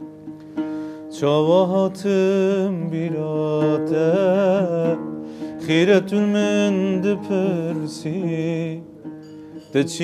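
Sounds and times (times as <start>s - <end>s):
oud: 0.0s - 10.0s
man singing slow song: 1.1s - 10.0s.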